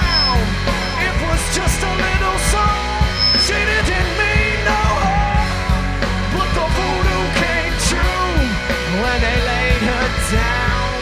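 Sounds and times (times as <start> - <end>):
electric guitar lead lines bending: 0.0 - 11.0
live rock band instrumental: 0.0 - 11.0.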